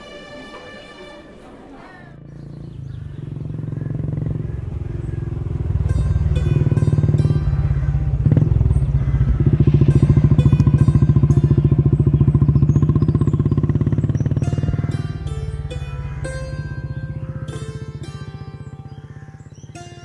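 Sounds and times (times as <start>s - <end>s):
motorcycle engine idling: 2.0s - 20.0s.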